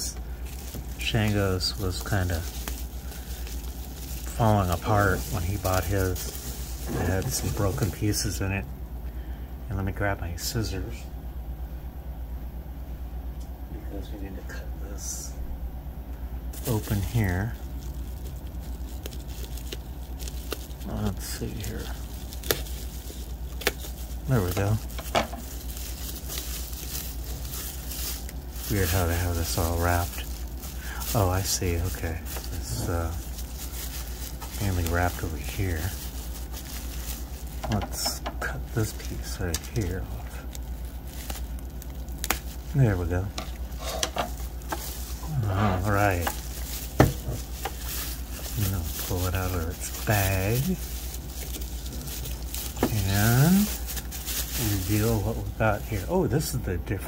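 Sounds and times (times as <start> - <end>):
bubble wrap crinkling: 0.0 - 8.7, 16.5 - 57.0.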